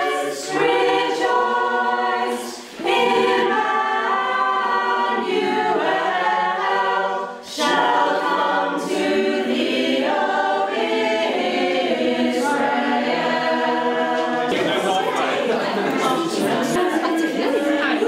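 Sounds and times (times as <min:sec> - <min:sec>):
mixed-voice choir singing: 0:00.0 - 0:18.0.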